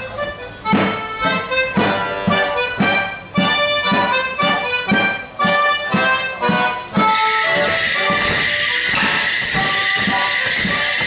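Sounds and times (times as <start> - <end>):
accordion playing dance tune: 0.0 - 11.0
steady beat: 6.5 - 11.0.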